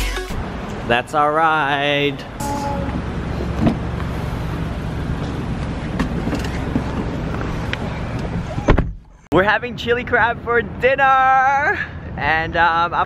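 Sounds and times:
car door shutting: 2.4s - 3.9s, 8.1s - 9.2s.

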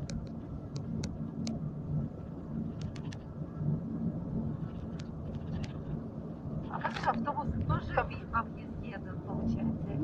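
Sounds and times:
vehicle rumble inside cabin: 0.0s - 10.0s
faint clicks: 2.7s - 3.2s.

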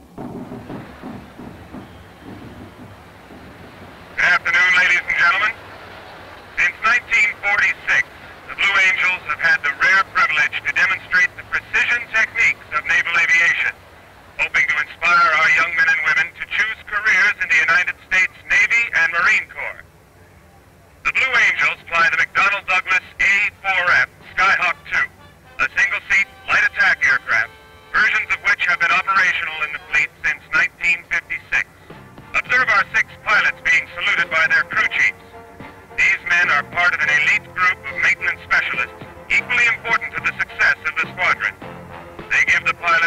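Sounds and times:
man talking over loudspeaker: 4.2s - 5.6s, 6.6s - 13.8s, 14.4s - 19.8s, 21.1s - 31.7s, 32.3s - 35.3s, 35.9s - 41.6s, 42.2s - 43.0s.

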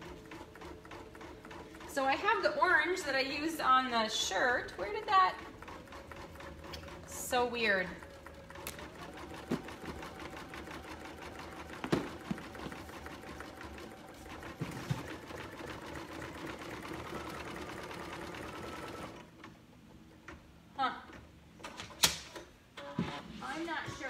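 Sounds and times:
embroidery machine stitching: 0.0s - 3.4s, 4.0s - 19.5s.

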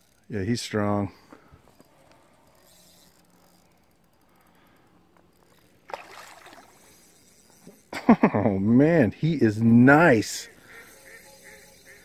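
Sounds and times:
fish splashing in water: 5.8s - 6.9s.

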